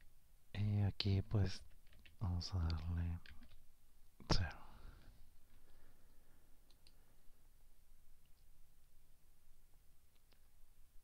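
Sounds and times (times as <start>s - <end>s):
person speaking: 0.5s - 3.5s, 4.2s - 5.1s.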